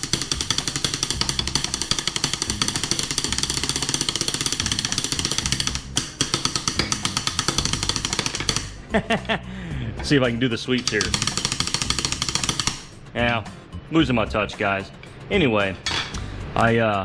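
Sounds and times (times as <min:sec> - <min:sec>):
drumsticks tapping metal blocks: 0:00.0 - 0:08.8, 0:10.8 - 0:12.9.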